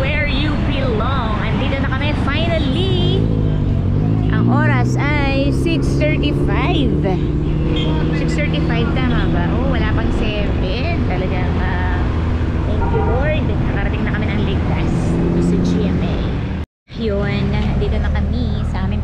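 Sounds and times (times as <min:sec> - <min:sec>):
woman talking: 0:00.0 - 0:03.3, 0:04.4 - 0:07.2, 0:08.2 - 0:12.1, 0:12.7 - 0:19.0
road noise: 0:00.0 - 0:19.0.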